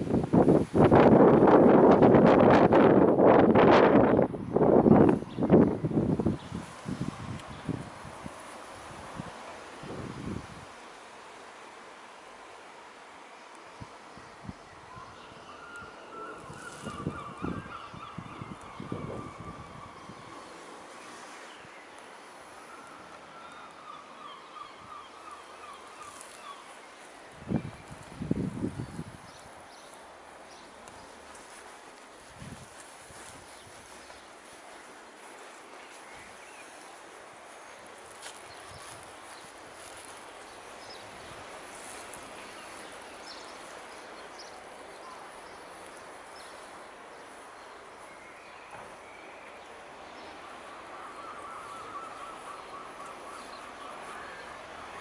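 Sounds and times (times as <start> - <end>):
steady background hiss: 0.0 - 55.0
bird wavering cry: 15.0 - 20.4, 50.9 - 55.0
footsteps on grass: 30.7 - 44.1.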